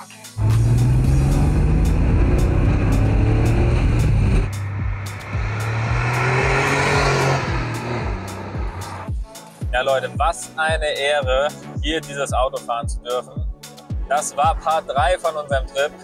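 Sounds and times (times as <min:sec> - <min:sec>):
car engine accelerating: 0:00.4 - 0:09.1.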